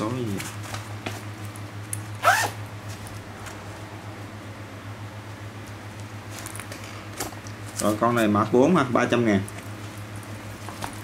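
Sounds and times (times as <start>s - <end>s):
zipper on canvas bag: 2.2s - 2.6s.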